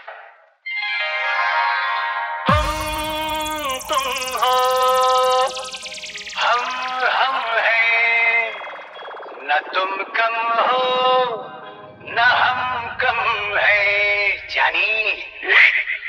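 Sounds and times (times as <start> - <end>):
falling sweep effect: 2.5 - 9.7, 11.6 - 15.3.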